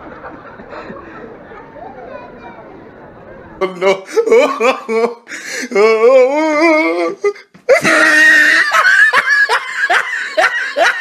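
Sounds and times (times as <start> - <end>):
person laughing hard: 3.8 - 5.3, 7.7 - 11.0.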